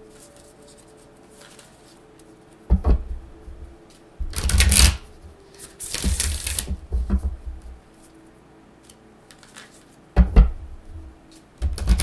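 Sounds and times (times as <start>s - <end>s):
cards shuffling: 0.0s - 2.6s, 3.9s - 6.7s, 7.9s - 10.0s.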